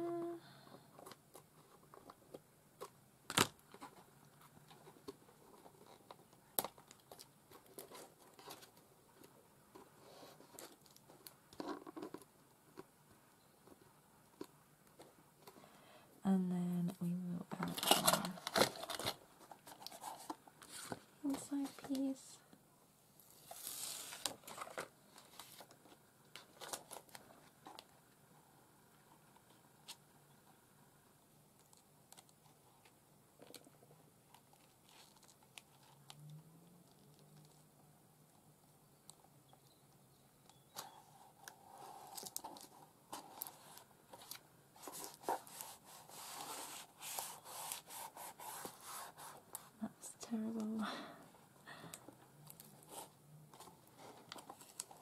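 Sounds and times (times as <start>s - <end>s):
person humming: 0.0s - 0.5s
paper rustling: 40.8s - 49.7s.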